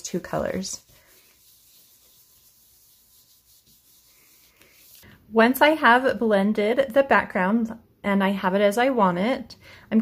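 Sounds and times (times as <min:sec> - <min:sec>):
brush rubbing on card: 0:00.0 - 0:05.0.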